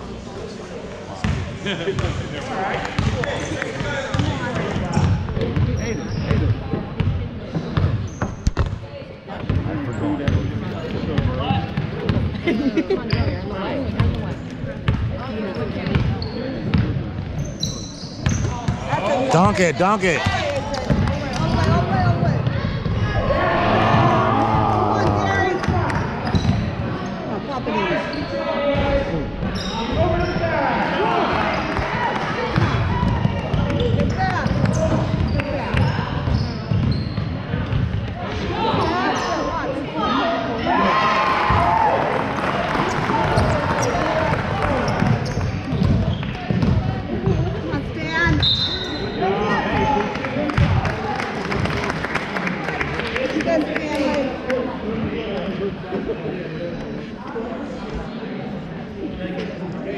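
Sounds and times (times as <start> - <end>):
overlapping talk and calls: 18.6 - 28.0.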